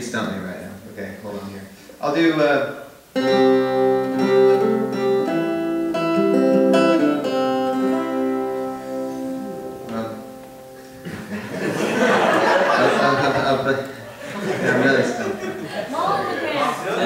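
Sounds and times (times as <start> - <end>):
acoustic guitar plucked notes: 3.2 - 11.3.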